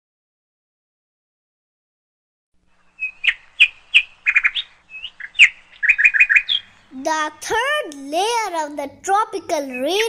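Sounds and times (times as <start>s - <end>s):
small bird singing: 2.7s - 7.5s, 8.3s - 10.0s.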